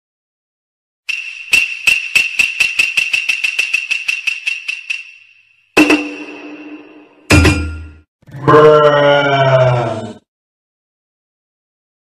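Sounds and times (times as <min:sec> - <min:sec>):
high ringing tone: 0:01.1 - 0:03.0
jingling percussive strokes: 0:01.1 - 0:08.1.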